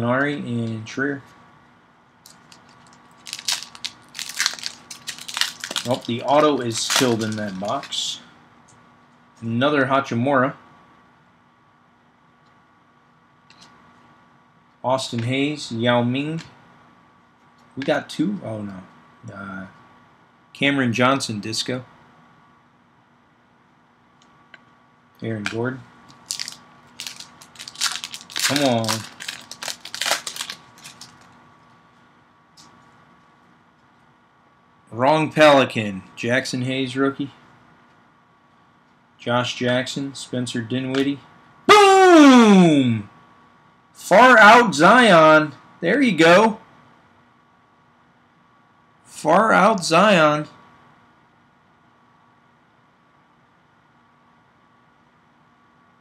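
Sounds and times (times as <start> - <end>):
wrapper crinkling as torn open: 2.3 - 8.0, 26.1 - 31.4.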